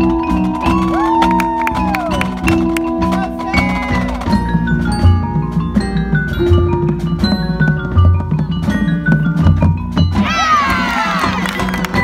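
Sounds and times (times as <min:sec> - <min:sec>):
marching band percussion: 0:00.0 - 0:12.0
many voices shouting together: 0:10.2 - 0:11.5.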